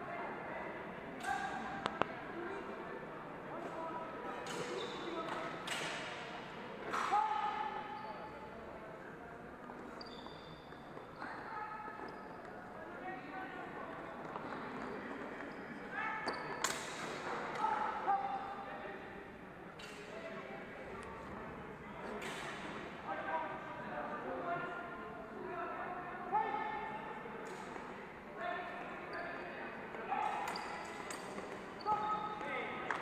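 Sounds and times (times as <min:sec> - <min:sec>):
voices echoing in sports hall: 0:00.0 - 0:33.0.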